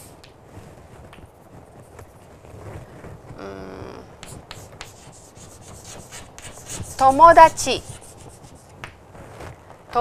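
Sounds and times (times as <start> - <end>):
chalk writing on chalkboard: 4.2 - 8.8.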